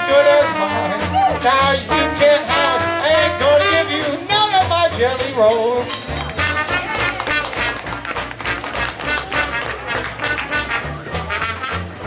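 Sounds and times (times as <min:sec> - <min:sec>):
banjo guitar and washboard rhythm: 0:00.0 - 0:12.0
string bass notes: 0:00.0 - 0:12.0
trombone and cornet lines: 0:00.0 - 0:12.0.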